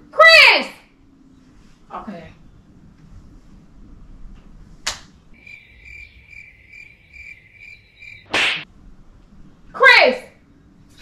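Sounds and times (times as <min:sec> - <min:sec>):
sharp swish: 0:08.3 - 0:08.7.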